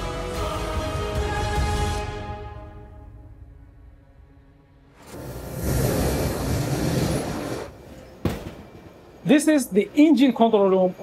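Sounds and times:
rumbling whoosh: 4.9s - 7.8s.

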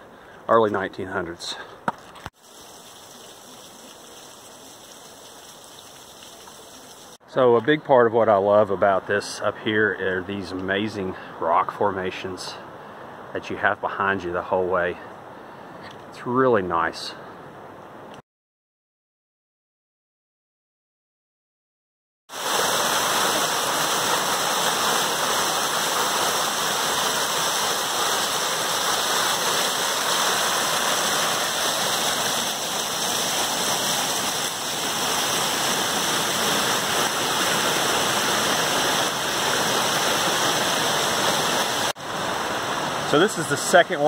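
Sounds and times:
waterfall rushing over rocks: 22.4s - 44.0s.

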